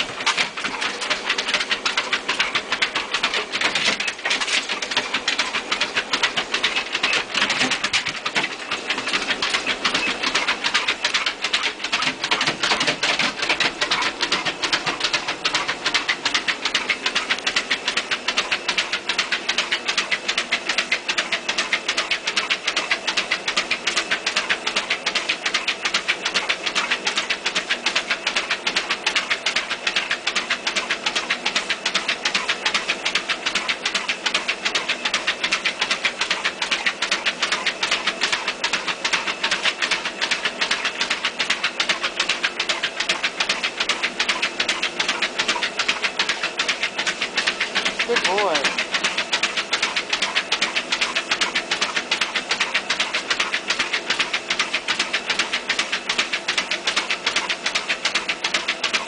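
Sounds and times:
dog paws pattering on treadmill: 0.0s - 59.0s
treadmill motor hum: 0.0s - 59.0s.

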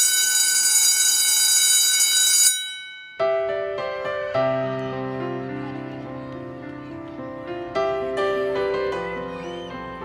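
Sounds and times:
electric school bell ringing: 0.0s - 3.5s
soft piano music: 3.2s - 10.0s.

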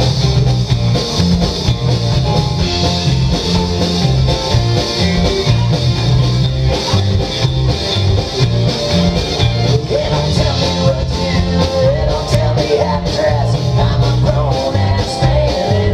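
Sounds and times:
live rock band playing: 0.0s - 15.9s.

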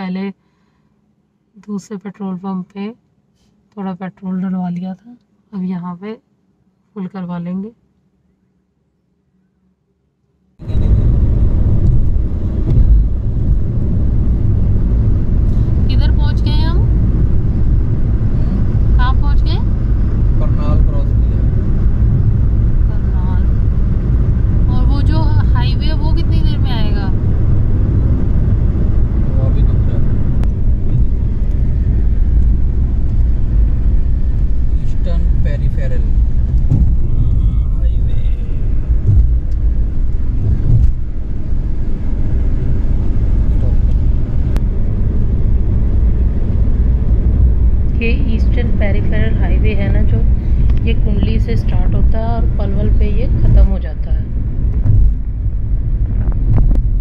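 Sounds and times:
car engine and tyre rumble: 10.6s - 57.0s.

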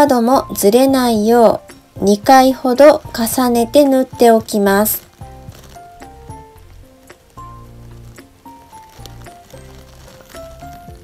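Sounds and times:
gentle instrumental melody: 0.0s - 11.0s.

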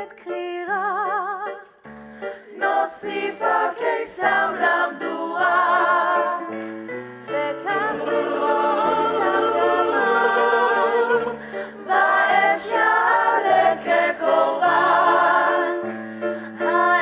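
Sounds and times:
group singing a cappella: 2.5s - 17.0s.

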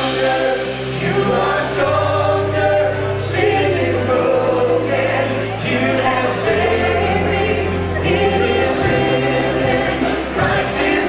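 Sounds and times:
held bass notes: 0.0s - 11.0s
singers singing in harmony: 0.0s - 11.0s
worship band playing: 0.0s - 11.0s.

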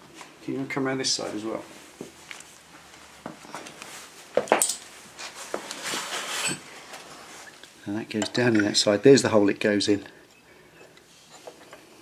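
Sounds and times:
rustling: 1.6s - 7.8s.

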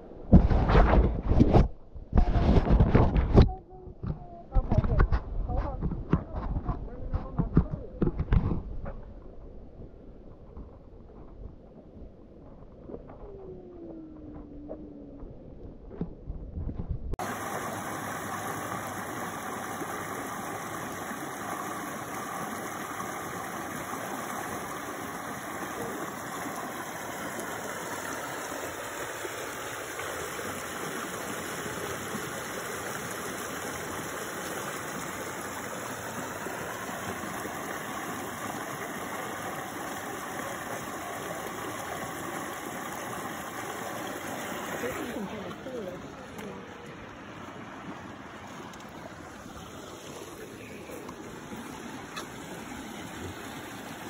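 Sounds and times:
water rushing over concrete: 17.2s - 54.0s.

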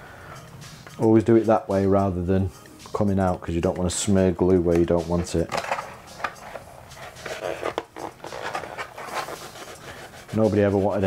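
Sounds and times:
elastic strap rubbing on plastic: 5.5s - 11.0s.

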